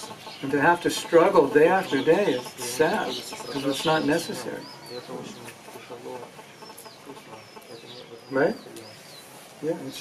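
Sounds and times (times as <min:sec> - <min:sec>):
low bird calls: 0:00.0 - 0:10.0.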